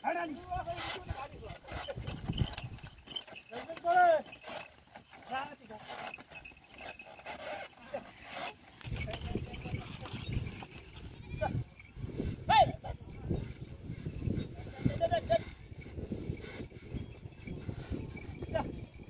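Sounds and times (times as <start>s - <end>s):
man shouting calls: 12.5s - 13.0s.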